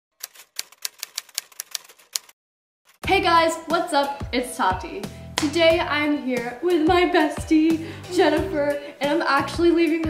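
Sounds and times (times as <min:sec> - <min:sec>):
typewriter key clicks: 0:00.2 - 0:02.3.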